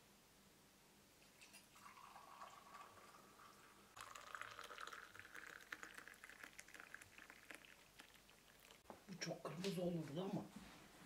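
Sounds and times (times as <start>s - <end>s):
tea pouring into glass: 1.2s - 8.9s.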